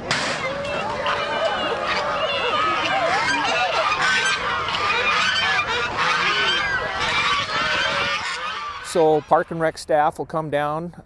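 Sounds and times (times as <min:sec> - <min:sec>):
geese honking: 0:00.4 - 0:10.1.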